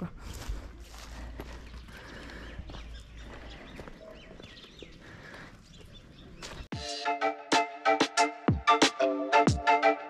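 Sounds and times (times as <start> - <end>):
footsteps on dirt and stone: 0.0 - 6.8.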